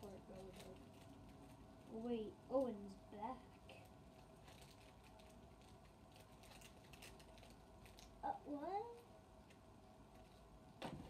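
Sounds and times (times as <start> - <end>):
plastic toy clicking and rustling: 0.0 - 1.5, 3.7 - 8.2.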